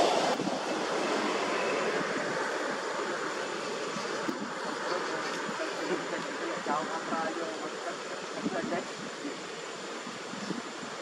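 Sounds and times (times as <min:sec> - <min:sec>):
wind through trees: 0:00.0 - 0:11.0.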